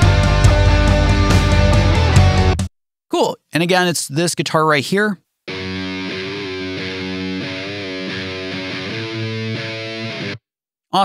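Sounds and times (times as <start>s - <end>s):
heavy electric guitar riff: 0.0s - 2.6s, 5.5s - 10.4s.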